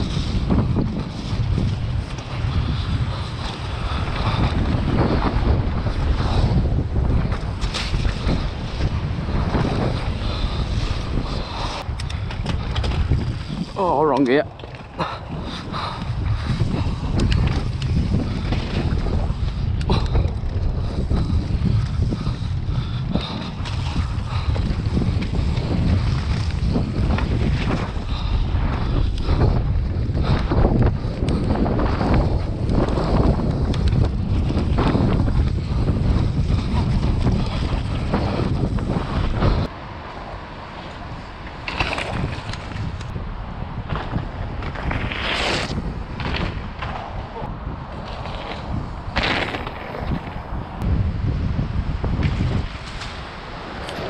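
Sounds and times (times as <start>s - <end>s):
bike knocks and rattles: 0.0s - 39.7s, 41.5s - 43.2s, 43.8s - 50.6s, 51.5s - 54.0s
tyres rumbling over dirt trail: 0.0s - 54.0s
wind buffeting microphone: 0.0s - 54.0s.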